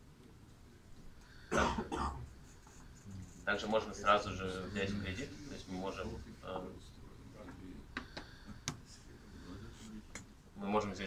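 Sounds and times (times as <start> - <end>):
person coughing: 1.5 - 2.3.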